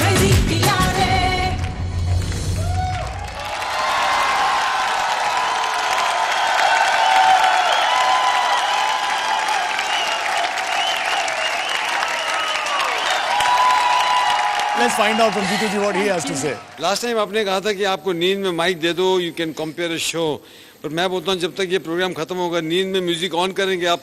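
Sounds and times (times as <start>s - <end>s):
dance music: 0.0s - 2.3s
audience applauding and cheering: 0.6s - 17.2s.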